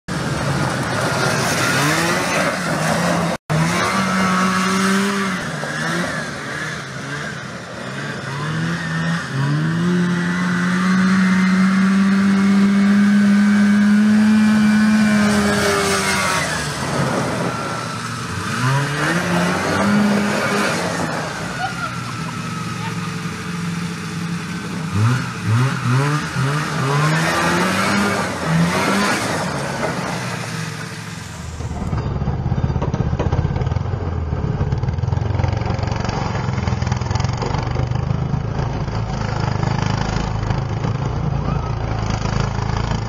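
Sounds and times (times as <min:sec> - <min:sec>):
vehicle engine running under load: 0:00.1 - 0:43.0.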